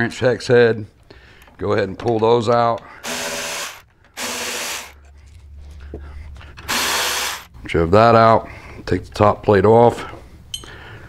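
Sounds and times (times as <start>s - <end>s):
power driver spinning: 3.0s - 5.2s, 6.5s - 7.6s.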